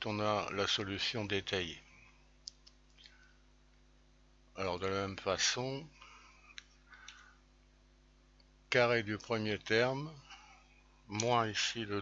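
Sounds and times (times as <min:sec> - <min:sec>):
faint ticks: 0:02.4 - 0:03.8, 0:06.0 - 0:07.4.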